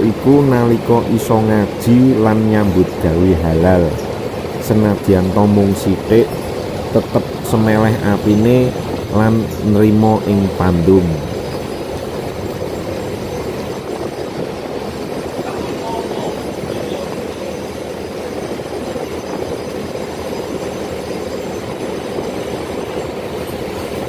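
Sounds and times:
boat engine running: 0.0 - 24.0
water rushing along hull: 0.0 - 24.0.

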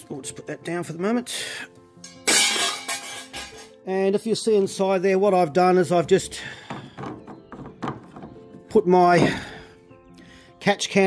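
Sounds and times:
hard object clattering down: 2.2 - 3.8, 6.7 - 9.4.

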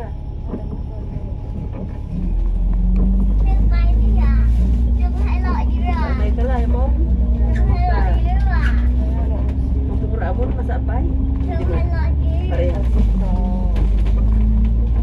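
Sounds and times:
people talking: 0.0 - 2.1, 3.0 - 15.0
bus engine drone: 0.0 - 15.0.

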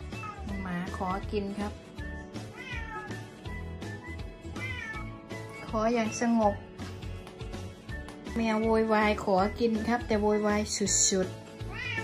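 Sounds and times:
cat meowing: 0.0 - 1.0, 2.4 - 3.4, 4.5 - 5.8, 11.6 - 12.0.

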